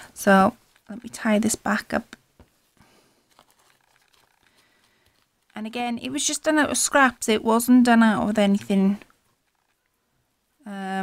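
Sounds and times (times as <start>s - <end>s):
ribbon and lace rustling: 0.3s - 6.6s.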